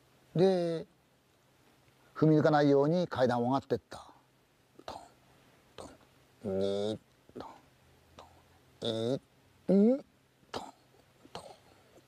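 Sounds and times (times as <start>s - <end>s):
man making pitched vocal sounds: 5.8s - 7.6s, 8.2s - 10.8s.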